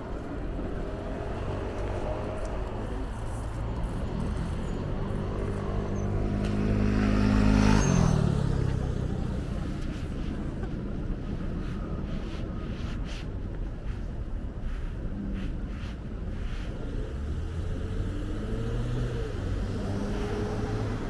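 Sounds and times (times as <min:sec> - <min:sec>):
background traffic noise: 0:00.0 - 0:21.0
vehicle engine passing by: 0:00.2 - 0:10.0, 0:16.7 - 0:21.0.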